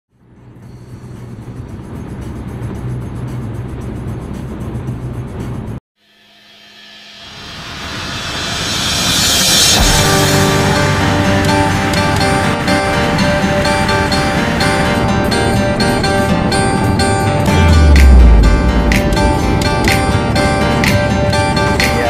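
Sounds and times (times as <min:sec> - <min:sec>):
vehicle droning on road: 0:00.2 - 0:05.8, 0:07.4 - 0:21.8
rising swell of noise: 0:07.0 - 0:21.8
guitar music: 0:09.7 - 0:22.0.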